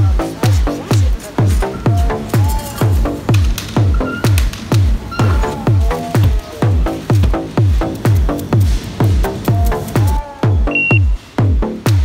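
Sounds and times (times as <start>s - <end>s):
deep kick drum: 0.0s - 12.0s
electronic dance music: 0.0s - 12.0s.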